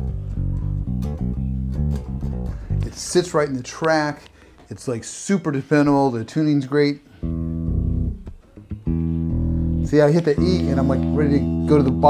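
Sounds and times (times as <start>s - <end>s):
electric bass notes plucked: 0.0s - 3.3s, 7.2s - 12.0s.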